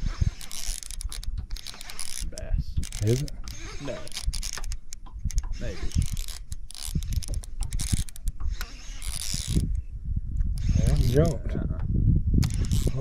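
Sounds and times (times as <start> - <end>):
fishing reel whirring and clicking: 0.0 - 9.9, 10.5 - 11.4, 12.4 - 13.0.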